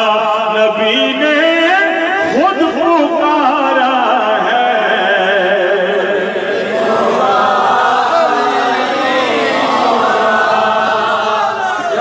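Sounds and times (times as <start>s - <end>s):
layered voices chanting: 6.2s - 12.0s.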